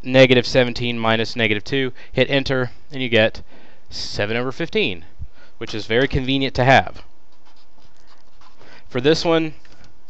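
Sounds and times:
steady background hiss: 0:00.0 - 0:10.0
marker scratching on paper: 0:07.3 - 0:08.7.

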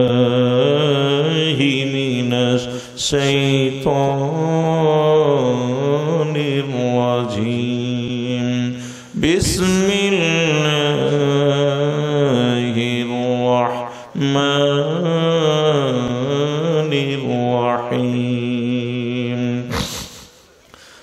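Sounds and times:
man chanting melodically: 0:00.0 - 0:20.2.

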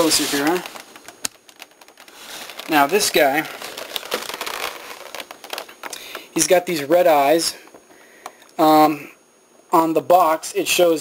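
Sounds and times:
plastic packaging crinkling: 0:00.0 - 0:06.6.

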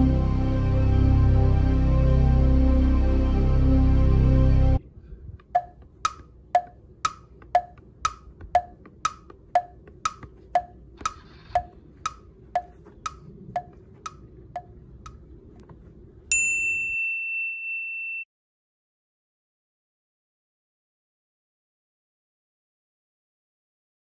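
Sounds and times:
wood-block tick-tock: 0:05.4 - 0:15.2
bright ding: 0:16.3 - 0:18.3.

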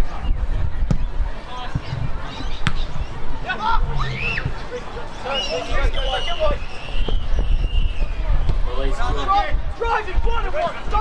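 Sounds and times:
players calling: 0:01.4 - 0:07.3
football kick thump: 0:01.7 - 0:02.9
low steady rumble: 0:01.9 - 0:05.2.

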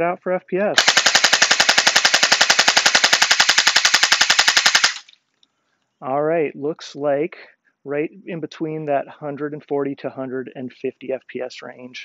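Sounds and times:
gel blaster firing full-auto: 0:00.8 - 0:05.1.

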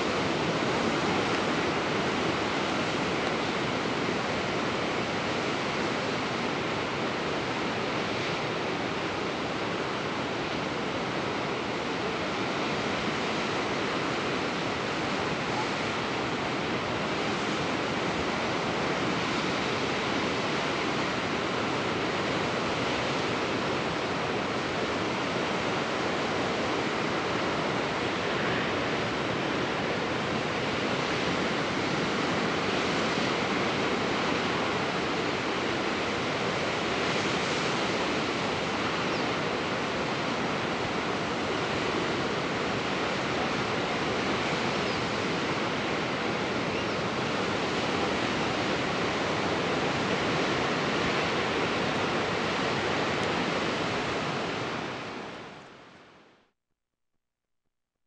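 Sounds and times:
ocean surf washing on shore: 0:00.0 - 0:56.0.

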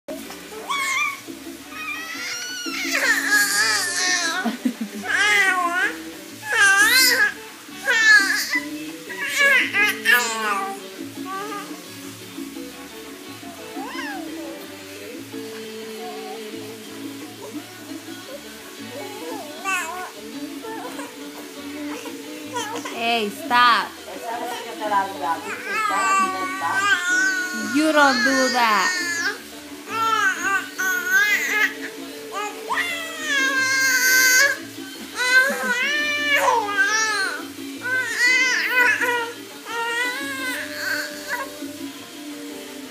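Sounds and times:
baby squealing and cooing: 0:00.5 - 0:11.8, 0:13.7 - 0:14.5, 0:18.4 - 0:21.2, 0:21.8 - 0:23.0, 0:25.4 - 0:41.6.

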